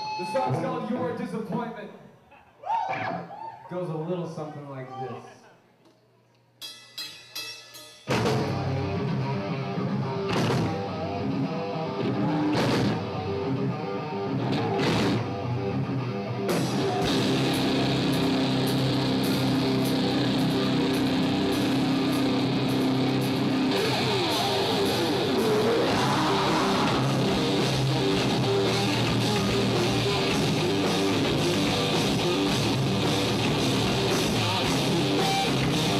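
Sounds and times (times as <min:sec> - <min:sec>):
metal band playing: 0:06.6 - 0:35.9.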